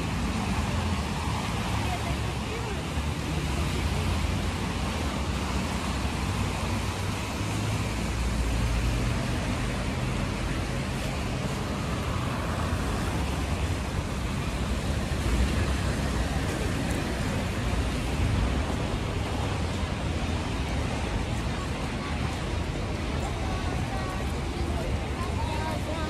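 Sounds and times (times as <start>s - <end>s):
cars passing: 0.0s - 26.0s
tyres on wet road: 0.0s - 26.0s.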